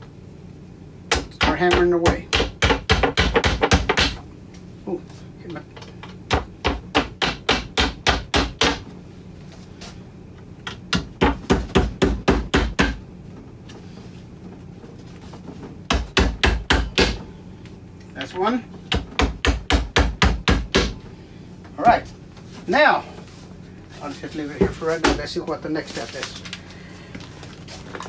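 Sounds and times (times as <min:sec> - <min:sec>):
hammer tapping dowels into wood: 0:01.1 - 0:04.2.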